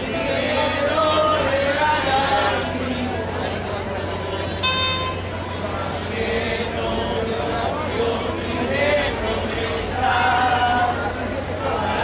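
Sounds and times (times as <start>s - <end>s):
crowd murmur: 0.0s - 12.0s
short high horn toot: 4.6s - 5.3s.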